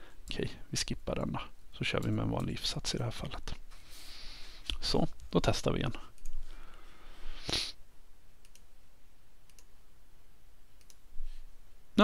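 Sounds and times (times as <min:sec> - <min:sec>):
faint computer mouse clicks: 0:08.4 - 0:08.7, 0:09.5 - 0:09.7, 0:10.8 - 0:11.0.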